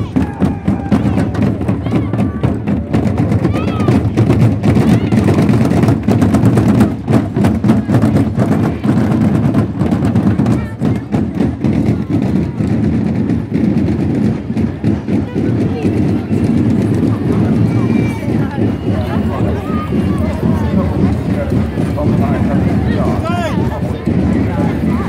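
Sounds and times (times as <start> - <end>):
crowd voices: 0.0 - 25.0
marching drum band playing: 0.0 - 25.0.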